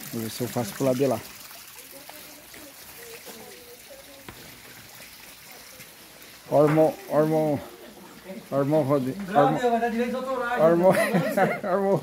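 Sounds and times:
water trickling in pond: 0.0s - 12.0s
faint voices: 1.7s - 9.7s.

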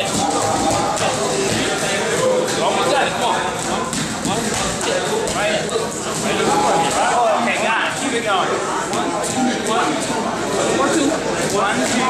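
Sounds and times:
men's voices: 0.0s - 12.0s.

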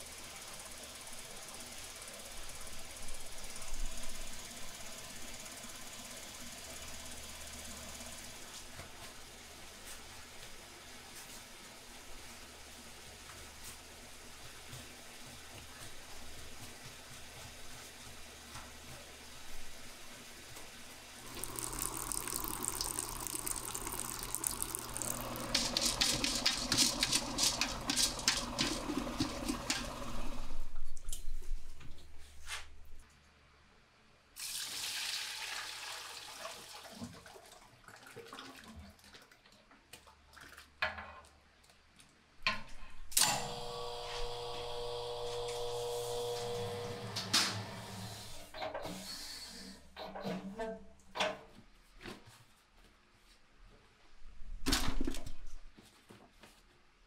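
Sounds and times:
spin-dryer motor humming: 0.0s - 31.1s, 43.2s - 48.5s
liquid pouring and splashing: 21.2s - 30.2s, 34.4s - 40.7s.

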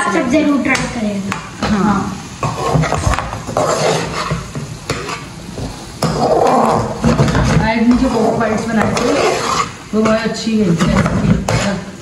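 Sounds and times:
corn kernels sizzling in a pan: 0.0s - 12.0s
metal spatula scraping a pan: 2.4s - 5.4s, 6.0s - 12.0s.

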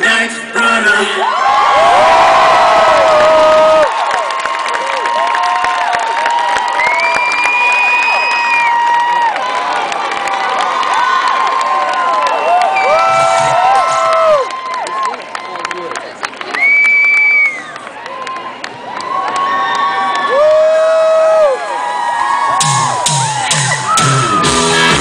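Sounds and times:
crowd cheering and shouting: 0.3s - 15.9s, 16.5s - 25.0s
live band music: 22.6s - 25.0s.

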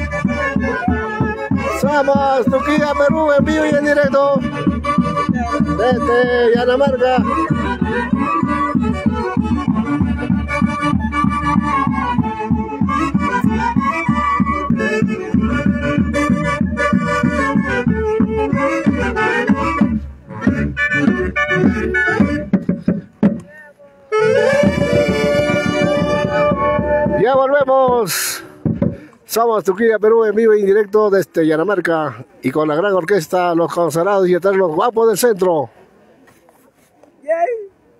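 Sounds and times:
saxophones playing a tune: 0.0s - 22.6s, 24.1s - 27.6s.

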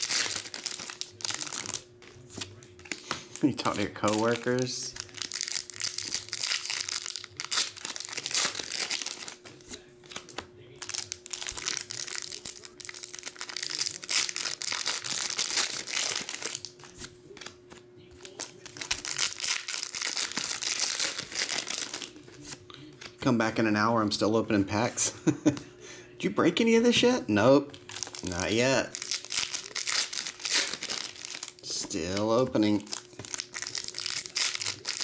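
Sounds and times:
foil wrappers crinkling and tearing: 0.0s - 23.2s, 27.7s - 35.0s
faint steady hum: 0.0s - 35.0s.

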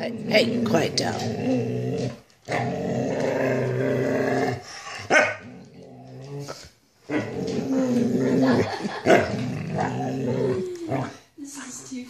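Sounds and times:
dog growly whining: 0.0s - 11.3s.

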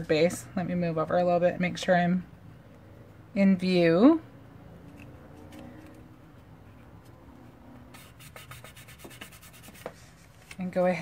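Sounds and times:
paper crackling and rubbing: 7.9s - 10.8s.

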